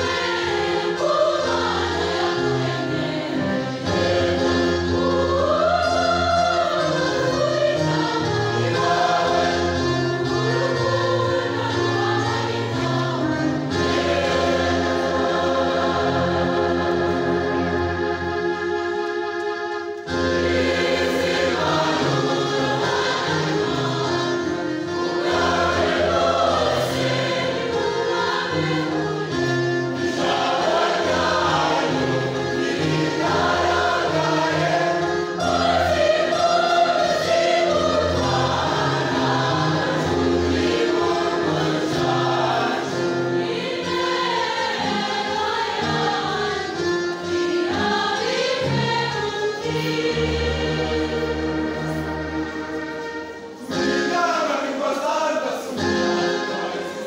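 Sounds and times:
large choir singing: 0.0s - 57.0s.

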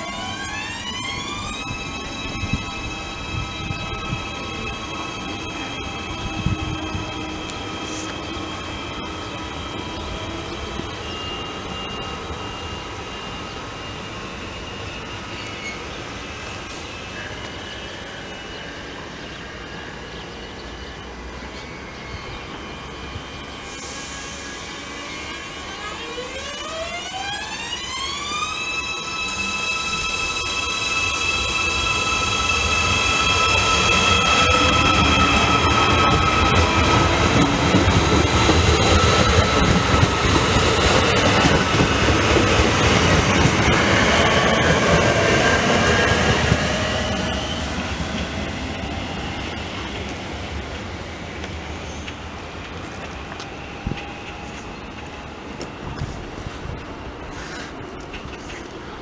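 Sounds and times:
train motor whine: 0.0s - 57.7s
train running noise: 0.0s - 59.0s.

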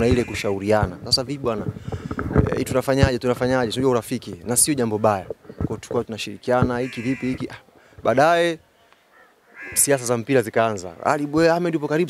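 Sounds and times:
man talking into microphones: 0.0s - 8.6s, 9.7s - 12.0s.

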